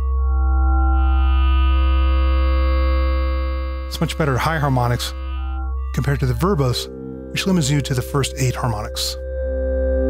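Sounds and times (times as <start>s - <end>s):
synthesizer oscillator steady low note: 0.0s - 10.0s.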